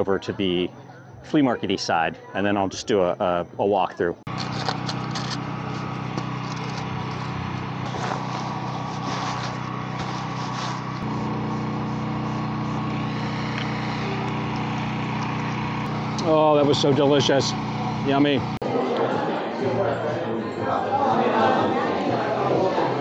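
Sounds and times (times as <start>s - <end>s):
steady engine hum: 4.2s - 18.6s.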